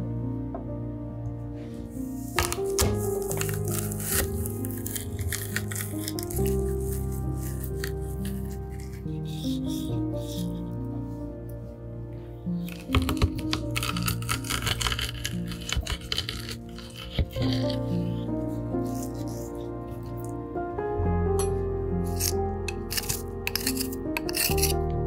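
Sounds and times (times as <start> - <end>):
background music: 0.0 - 25.0
garlic crusher crunching and scraping: 2.3 - 10.4, 12.6 - 17.9, 22.1 - 25.0.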